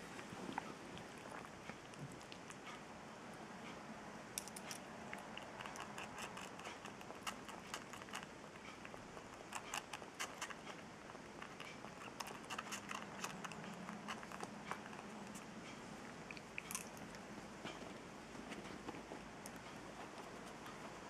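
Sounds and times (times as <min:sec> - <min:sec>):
squirrel mouth clicks and smacks: 0:04.4 - 0:15.5.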